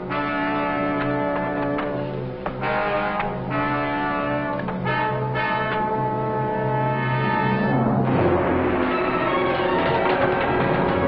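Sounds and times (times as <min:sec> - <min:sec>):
low brass chord: 0:00.0 - 0:09.7.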